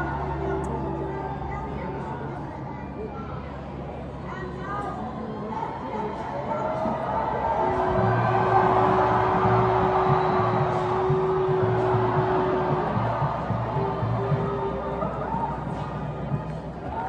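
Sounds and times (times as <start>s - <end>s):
crowd cheering: 5.7s - 17.0s
music with low drum beat: 7.6s - 17.0s.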